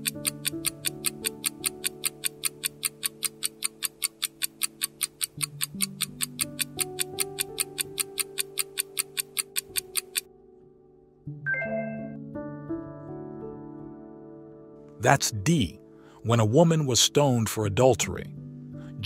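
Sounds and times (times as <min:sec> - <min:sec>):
clock ticking: 0:00.0 - 0:10.3.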